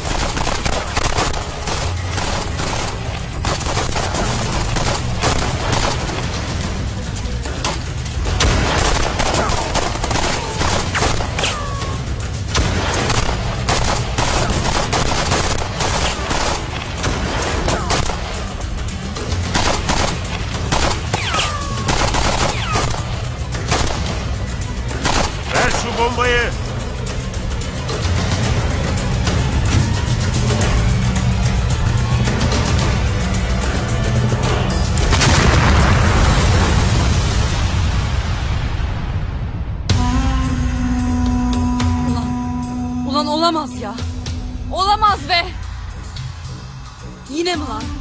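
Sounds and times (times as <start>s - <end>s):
rapid rifle fire: 0.0s - 6.3s, 8.4s - 11.4s, 12.6s - 18.4s, 19.4s - 23.1s, 23.7s - 24.2s, 25.0s - 25.6s.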